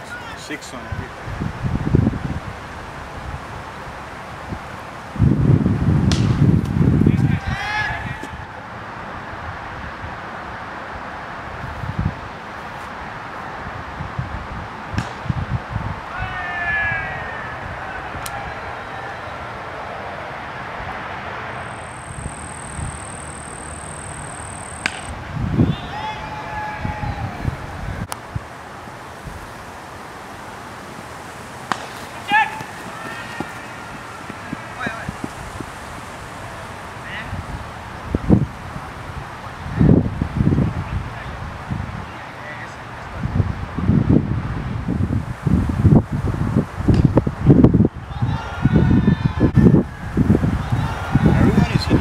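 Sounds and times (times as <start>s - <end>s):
wind buffeting microphone: 0.8s - 8.5s, 11.4s - 18.6s, 25.1s - 29.8s, 32.3s - 42.1s, 43.1s - 52.0s
cricket bat striking ball: 6.1s - 6.4s, 24.8s - 25.1s, 31.7s - 35.7s.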